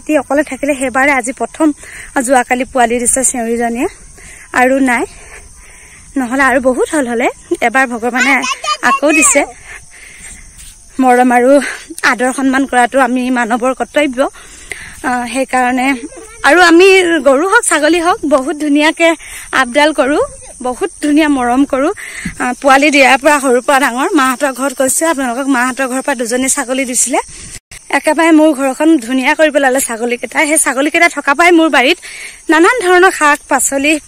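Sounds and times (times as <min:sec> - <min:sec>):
woman speaking: 0:00.0 - 0:05.2, 0:06.2 - 0:09.6, 0:11.0 - 0:14.4, 0:15.0 - 0:27.3, 0:27.9 - 0:34.0
woman talking: 0:00.0 - 0:05.3, 0:06.1 - 0:09.7, 0:10.9 - 0:14.4, 0:15.0 - 0:27.3, 0:27.9 - 0:34.0
insects chirring: 0:00.0 - 0:34.0.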